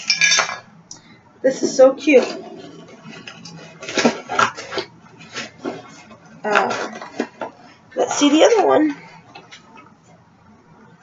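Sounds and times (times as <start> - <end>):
packaging rustling: 2.2 - 9.8.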